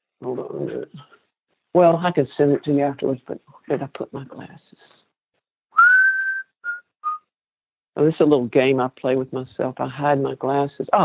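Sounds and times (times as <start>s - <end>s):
person whistling: 5.7s - 7.3s.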